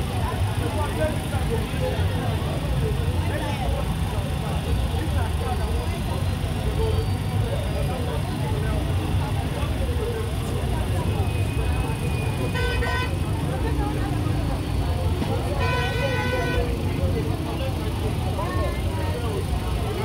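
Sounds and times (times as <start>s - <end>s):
crowd chatter: 0.0s - 20.0s
road traffic rumble: 0.0s - 20.0s
vehicle horn honking: 12.5s - 13.2s, 15.6s - 16.8s.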